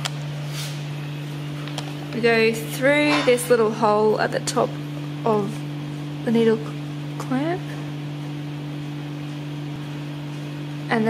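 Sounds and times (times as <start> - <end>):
steady two-tone low hum: 0.0 - 11.0.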